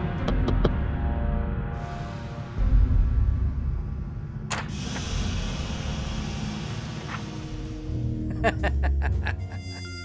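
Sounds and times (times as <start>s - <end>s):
low droning music: 0.0s - 10.0s
mechanical whirring hiss: 4.6s - 8.0s.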